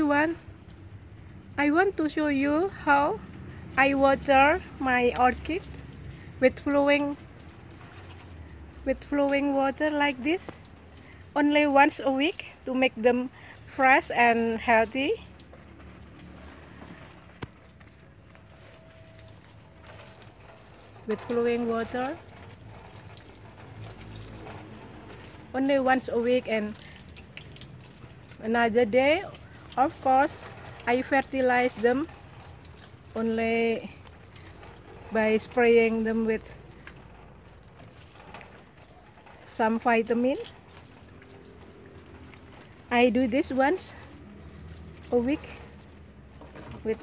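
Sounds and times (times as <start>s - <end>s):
running water hissing: 0.0s - 47.0s.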